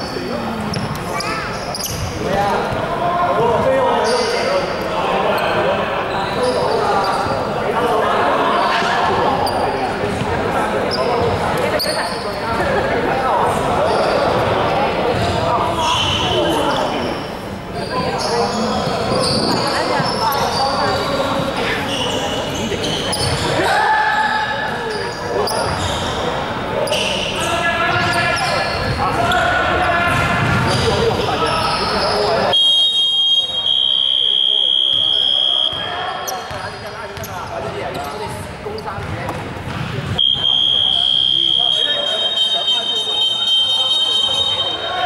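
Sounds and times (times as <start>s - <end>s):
sneaker squeaks: 0.0s - 2.8s, 3.6s - 7.5s, 8.6s - 12.4s, 13.8s - 14.5s, 15.1s - 23.7s, 24.4s - 45.0s
players' indistinct calls: 0.0s - 45.0s
basketball bouncing: 39.0s - 40.2s.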